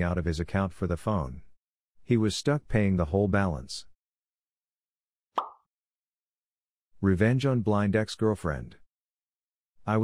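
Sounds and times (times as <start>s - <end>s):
short plop transition effect: 5.4s - 5.7s.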